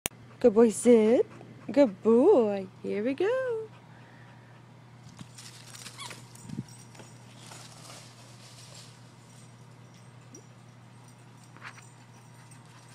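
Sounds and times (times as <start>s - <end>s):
dog running through dry leaves: 5.2s - 9.2s.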